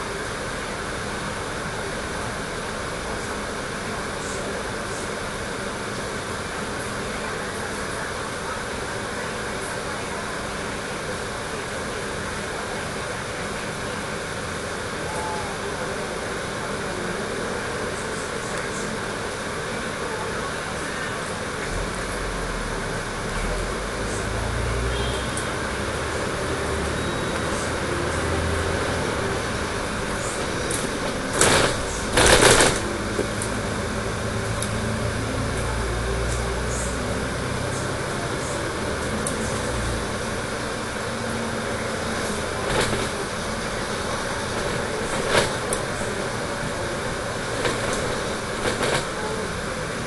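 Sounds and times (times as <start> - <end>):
bus engine and road rumble: 0.0 - 50.0.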